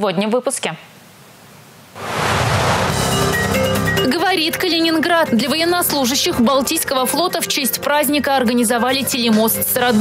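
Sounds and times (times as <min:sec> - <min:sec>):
rising whoosh: 0:02.0 - 0:03.8
news headlines music: 0:02.0 - 0:06.4.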